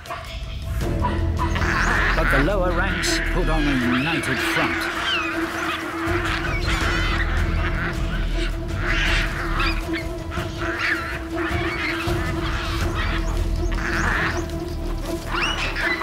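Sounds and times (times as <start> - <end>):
baboons screaming: 0.0 - 16.0
music with low drone: 0.0 - 16.0.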